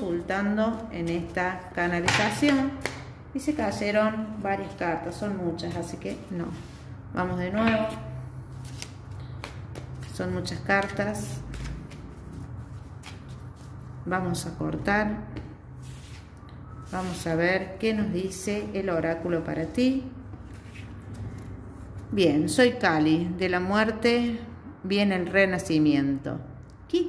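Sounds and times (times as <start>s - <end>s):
cards shuffling: 8.6s - 10.2s, 10.8s - 13.8s.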